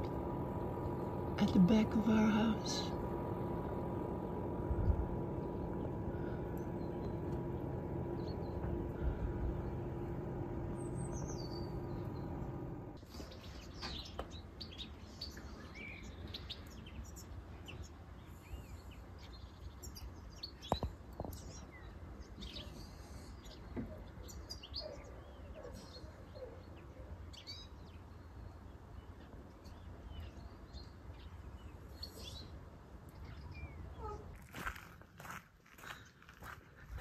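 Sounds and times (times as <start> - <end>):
low hum and rumble: 0.0 - 13.0
birds chirping and calling: 5.0 - 28.2.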